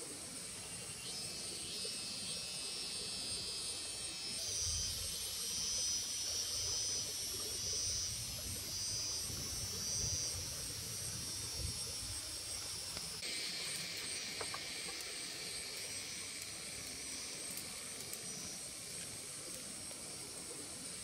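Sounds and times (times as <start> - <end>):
insects buzzing: 0.0 - 21.0
steady hiss: 0.0 - 21.0.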